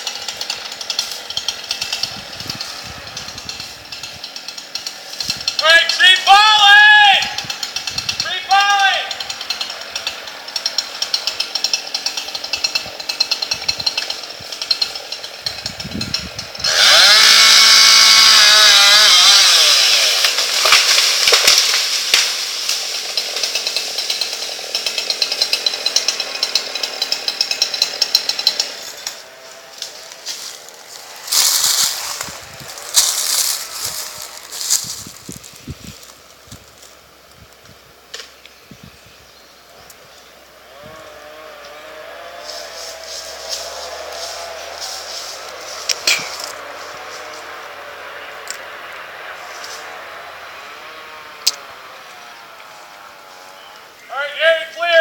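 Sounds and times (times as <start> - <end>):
chainsaw idling and revving: 0.0 - 55.0.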